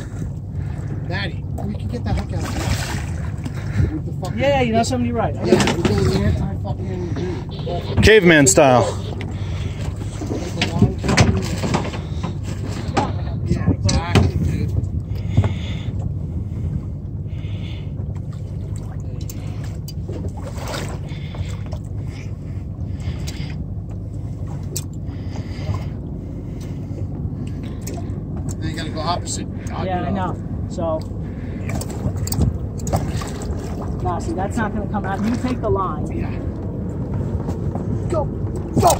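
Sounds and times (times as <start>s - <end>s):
boat engine idling: 0.0s - 38.9s.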